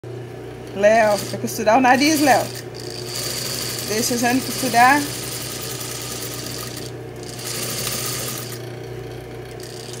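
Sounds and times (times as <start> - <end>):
sewing machine motor hum: 0.4 - 10.0
sewing machine stitching clatter: 2.0 - 8.6.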